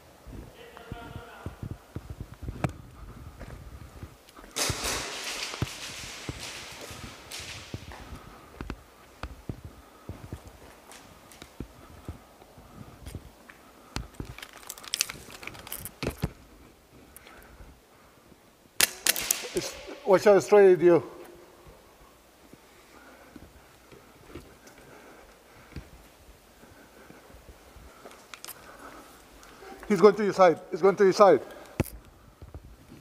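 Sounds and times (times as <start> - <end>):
footsteps: 0.0 - 33.0
airsoft gunfire: 18.8 - 19.9.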